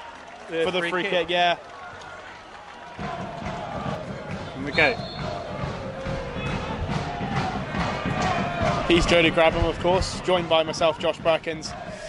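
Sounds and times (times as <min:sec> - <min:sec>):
football supporters chanting: 0:02.8 - 0:12.0.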